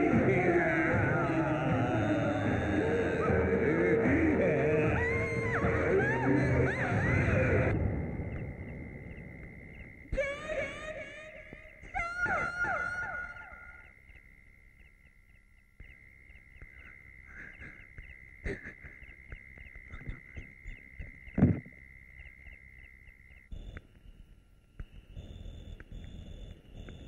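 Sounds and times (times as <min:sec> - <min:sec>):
steady high drone: 0:00.0 - 0:11.4
insects chirping: 0:00.0 - 0:27.0.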